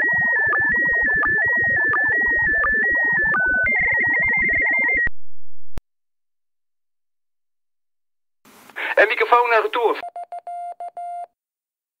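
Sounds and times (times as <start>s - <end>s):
morse code beep tone: 0.0s - 5.1s, 10.0s - 11.3s
radio-like voice: 8.8s - 10.0s.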